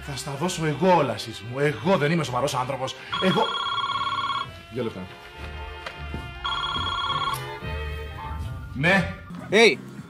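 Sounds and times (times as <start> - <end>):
electronic telephone ring: 3.1 - 4.6, 6.4 - 7.6.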